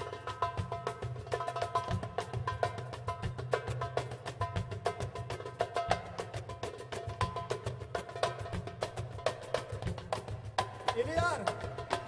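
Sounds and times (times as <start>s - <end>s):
hand drum solo: 0.0s - 12.0s.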